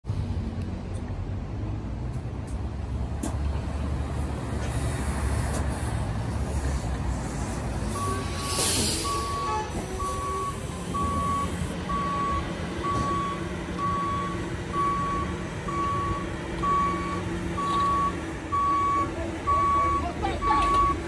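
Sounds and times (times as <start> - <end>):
reversing alarm beeping: 7.9 - 21.0.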